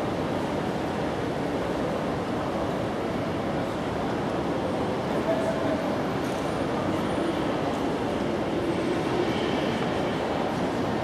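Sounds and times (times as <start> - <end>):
din of a large lobby: 0.0 - 11.0.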